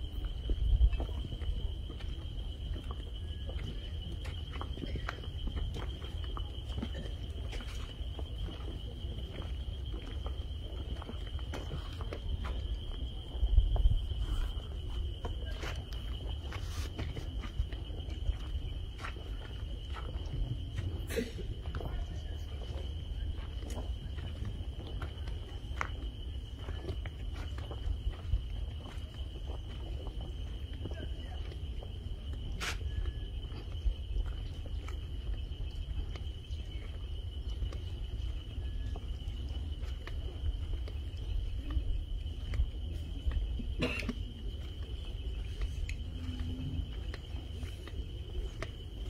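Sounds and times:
wind rumble on microphone: 0.0s - 49.0s.

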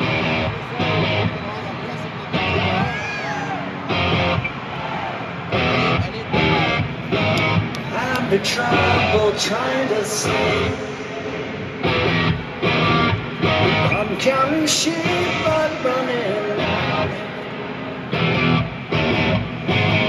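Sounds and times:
live rock band playing: 5.6s - 7.8s, 10.2s - 14.2s, 18.2s - 20.0s.

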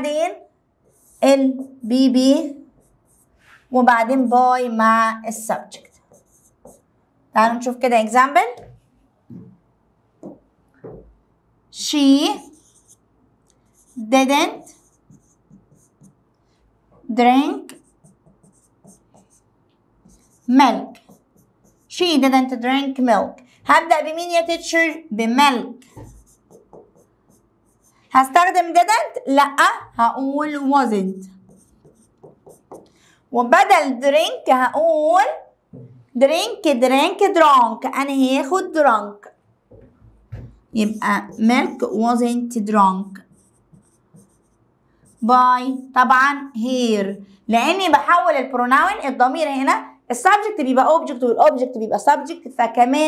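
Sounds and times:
woman speaking: 0.0s - 0.4s, 1.2s - 2.6s, 3.7s - 5.9s, 7.4s - 8.7s, 11.8s - 12.9s, 13.9s - 14.9s, 17.1s - 17.8s, 20.4s - 21.0s, 21.9s - 25.9s, 28.1s - 31.3s, 33.4s - 35.5s, 36.1s - 39.3s, 40.7s - 43.2s, 45.2s - 53.0s
pen scratching on screen: 0.8s - 3.4s, 5.4s - 6.9s, 12.2s - 16.3s, 17.4s - 22.3s, 24.3s - 28.4s, 29.0s - 33.0s, 40.4s - 42.2s, 43.0s - 45.4s.

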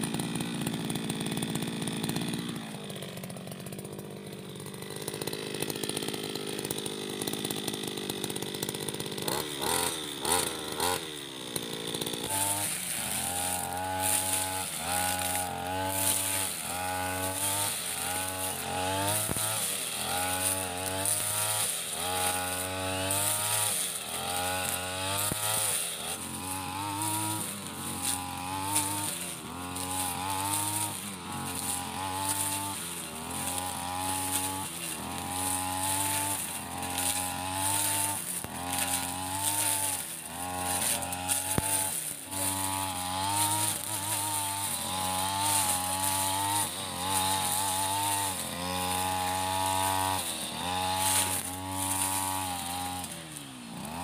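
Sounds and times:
brush cutter engine running: 0.0s - 54.0s.

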